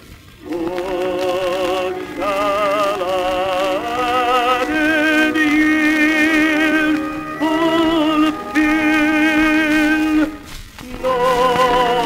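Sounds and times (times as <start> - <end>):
man singing a hymn: 0.4 - 12.0
orchestra: 0.4 - 12.0.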